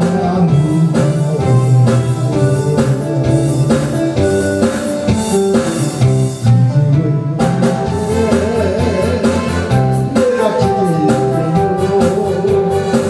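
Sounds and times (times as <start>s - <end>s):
man singing into microphone: 0.0s - 4.7s, 5.6s - 13.0s
guitar and drums: 0.0s - 13.0s.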